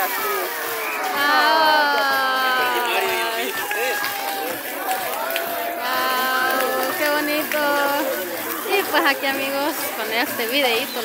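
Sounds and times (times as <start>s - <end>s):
outdoor background noise: 0.0s - 11.0s
people talking nearby: 0.0s - 11.0s.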